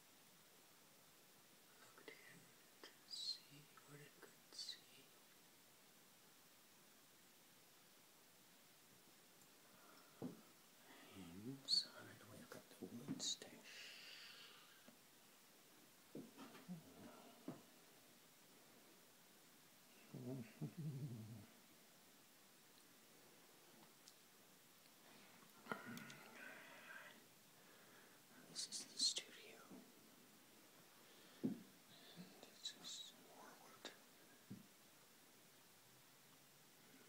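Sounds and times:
faint hiss: 0.0s - 37.0s
person whispering: 1.7s - 5.2s, 10.8s - 14.8s, 16.4s - 17.6s, 19.9s - 21.5s, 25.6s - 27.2s, 28.3s - 29.9s, 31.9s - 34.2s.

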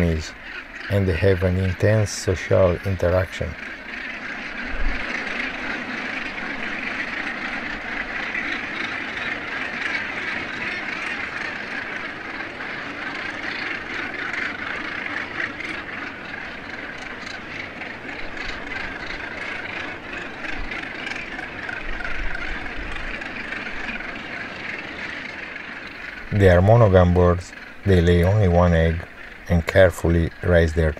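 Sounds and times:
gannet colony calling: 0.0s - 30.9s.

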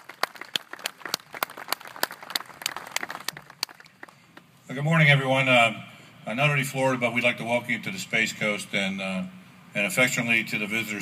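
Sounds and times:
small crowd applauding: 0.0s - 4.2s.

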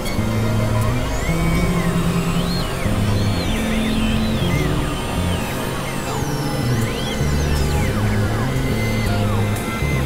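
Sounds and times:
gliding high synth tones: 0.0s - 10.0s
low synthesizer drone: 0.0s - 10.0s.

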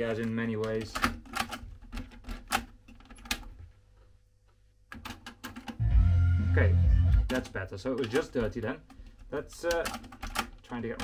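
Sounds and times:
music playing from tape: 5.8s - 7.4s.

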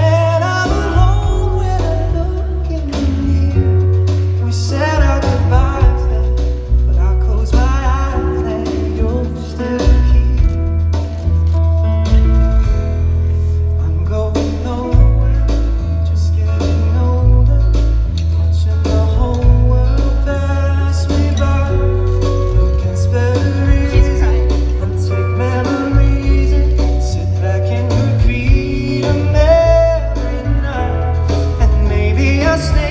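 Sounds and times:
man singing: 0.0s - 11.2s, 13.7s - 32.9s
deep bass line: 0.0s - 32.9s.

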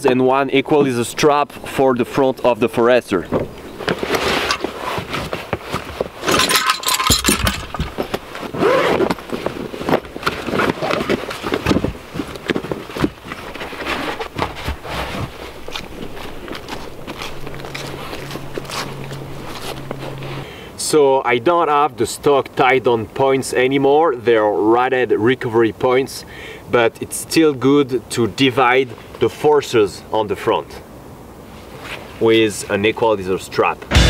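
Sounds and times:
gear rummaged in nylon bag: 3.5s - 20.4s
low steady hum: 5.8s - 20.7s.

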